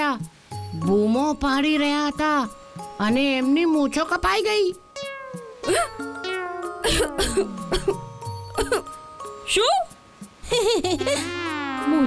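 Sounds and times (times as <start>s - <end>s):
playful cartoon music: 4.8s - 12.0s.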